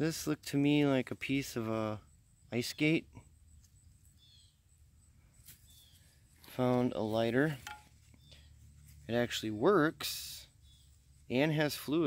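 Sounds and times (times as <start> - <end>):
high bird chirp: 3.3 - 4.8, 5.4 - 6.5, 8.1 - 8.8, 10.4 - 11.4.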